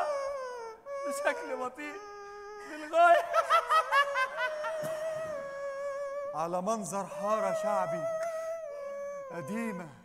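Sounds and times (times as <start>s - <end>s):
people laughing: 2.9s - 5.6s.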